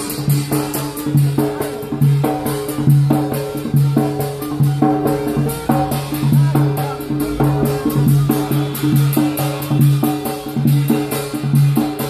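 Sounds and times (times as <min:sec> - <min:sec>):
reed pipe melody: 0:00.0 - 0:11.3
drum beaten with sticks: 0:00.0 - 0:12.0.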